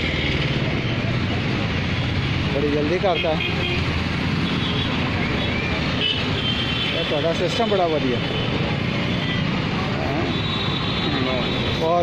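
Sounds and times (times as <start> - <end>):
traffic and engine noise: 0.0 - 12.0.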